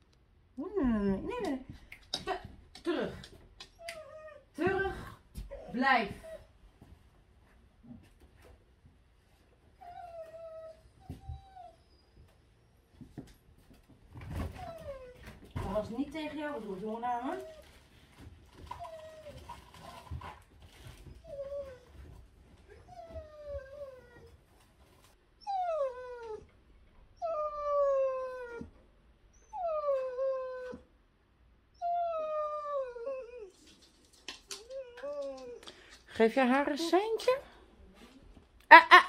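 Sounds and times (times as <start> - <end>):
dog whining: 3.6 - 4.8, 5.4 - 6.5, 9.8 - 12.2, 14.4 - 15.3, 21.0 - 24.4, 25.4 - 26.5, 27.2 - 30.9, 31.7 - 33.7, 34.5 - 35.7.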